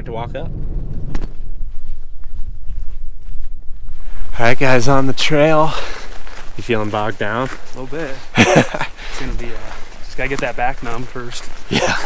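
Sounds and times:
low wind rumble on microphone: 0:00.0 - 0:05.1
footsteps on dirt trail: 0:00.5 - 0:12.0.

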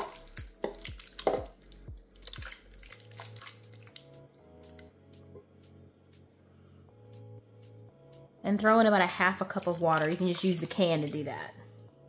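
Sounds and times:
tomatoes splatting into a pot: 0:00.0 - 0:01.5
background music with bass: 0:00.0 - 0:08.8.

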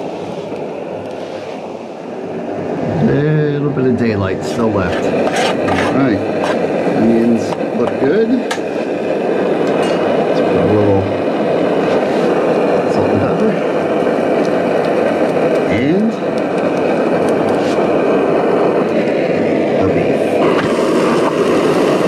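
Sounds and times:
camping stove burning: 0:00.0 - 0:22.0
onions frying: 0:04.6 - 0:19.2, 0:20.4 - 0:22.0.

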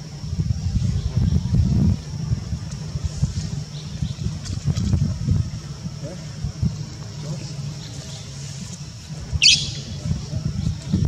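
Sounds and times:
low uneven rumble: 0:00.0 - 0:11.0
high-pitched animal squeak: 0:09.4 - 0:09.8.

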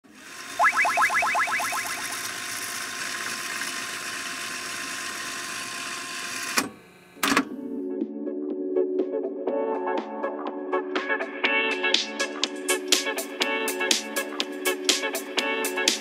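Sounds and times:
rising chirps: 0:00.6 - 0:02.1
music: 0:07.2 - 0:16.0.

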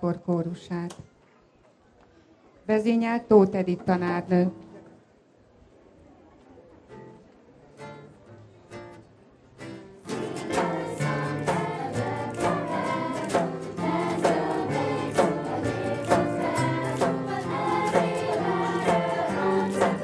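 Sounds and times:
acoustic guitars strumming: 0:09.6 - 0:20.0
children's choir singing: 0:10.1 - 0:20.0.

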